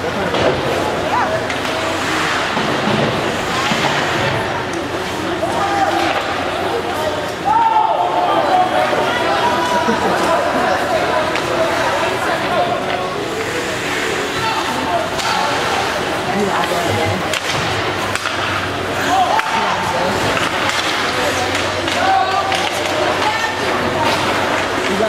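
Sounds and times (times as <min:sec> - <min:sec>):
hockey sticks and puck knocking: 0:15.1 - 0:25.0.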